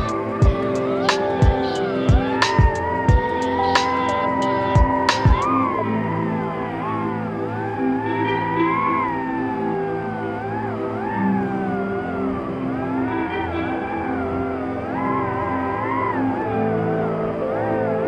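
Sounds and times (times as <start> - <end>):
slow ambient music: 0.0 - 18.0.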